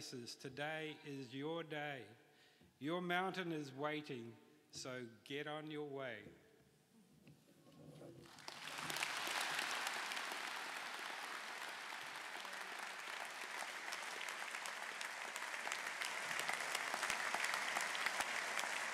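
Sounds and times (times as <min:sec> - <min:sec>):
audience applauding: 0:08.2 - 0:18.9.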